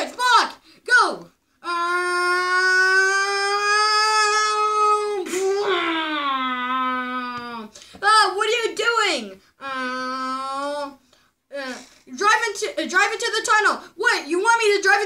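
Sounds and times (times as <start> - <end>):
high-pitched wordless vocalizing: 0.0 - 14.3.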